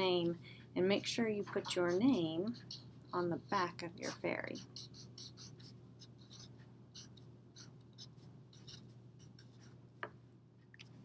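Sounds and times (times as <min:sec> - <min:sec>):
marker scratching on paper: 0:00.8 - 0:09.8.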